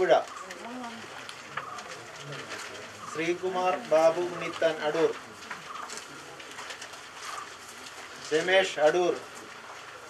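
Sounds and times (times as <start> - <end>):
dove cooing: 7.2 - 7.6.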